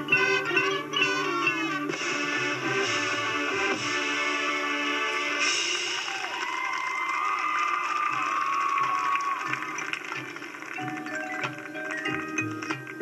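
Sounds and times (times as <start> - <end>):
marching band music: 0.0 - 6.7, 8.7 - 13.0
crowd cheering and whooping: 5.8 - 10.2.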